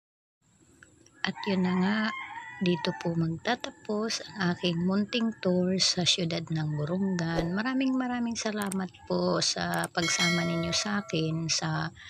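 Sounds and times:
rooster crowing: 0:01.2 - 0:03.2
woman speaking: 0:01.2 - 0:12.0.

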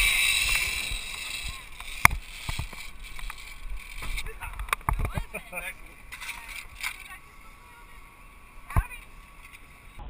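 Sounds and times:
zipline trolley metallic clack: 0:00.0 - 0:05.1
faint outdoor background: 0:00.0 - 0:10.0.

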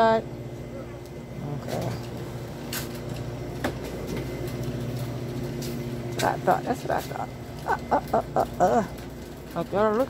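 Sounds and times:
low machine hum: 0:00.0 - 0:10.0.

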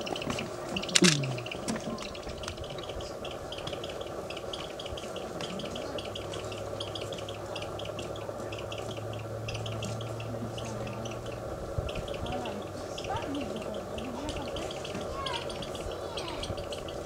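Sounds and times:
low steady hum: 0:00.0 - 0:17.0
rapid high chirping: 0:00.0 - 0:17.0
steady background noise: 0:00.0 - 0:17.0.

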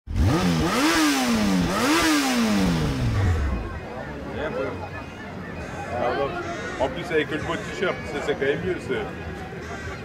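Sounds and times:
buggy engine revving: 0:00.1 - 0:03.9.

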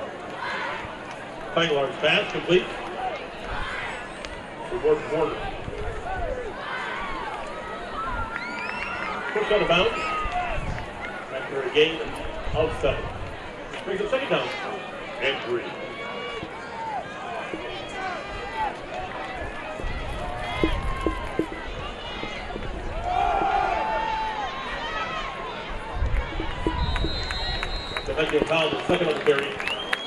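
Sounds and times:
fans and players calling out: 0:00.0 - 0:30.0
referee's whistle blast: 0:26.6 - 0:28.3.

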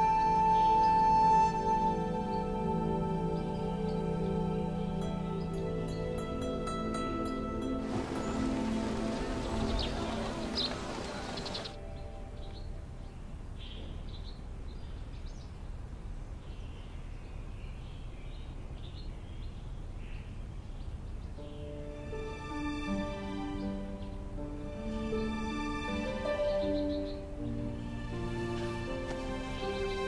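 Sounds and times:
soft background music: 0:00.0 - 0:13.8, 0:21.3 - 0:30.0
steady outdoor hiss: 0:00.0 - 0:30.0
bird chirps: 0:07.8 - 0:15.6, 0:26.4 - 0:27.3.

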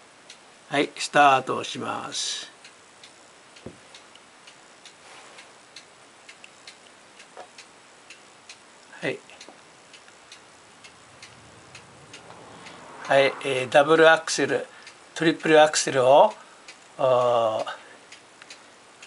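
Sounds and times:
faint mechanism ticking: 0:00.0 - 0:19.0.

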